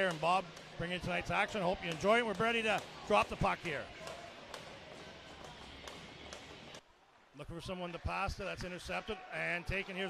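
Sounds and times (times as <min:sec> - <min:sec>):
ice rink ambience: 0:00.0 - 0:10.0.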